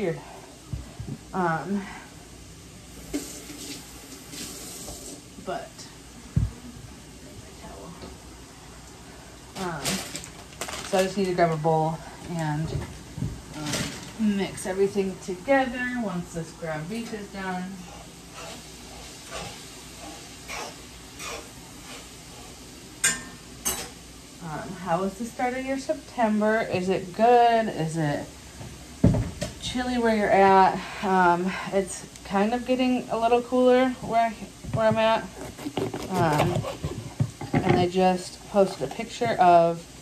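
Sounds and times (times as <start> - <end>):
meat sizzling in a frying pan: 2.3 - 5.5
spatula stirring in a pan: 17.1 - 24.0.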